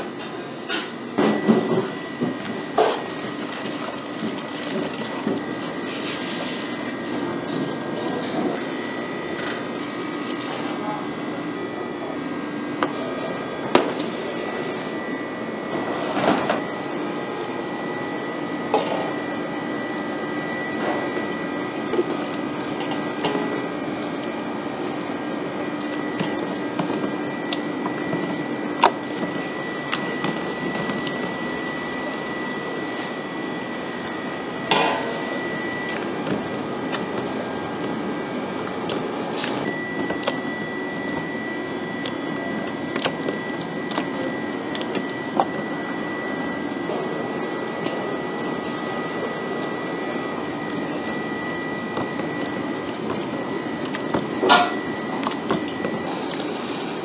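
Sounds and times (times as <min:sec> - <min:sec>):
kitchen equipment humming: 0:00.0 - 0:57.0
high steady tone: 0:39.5 - 0:56.7.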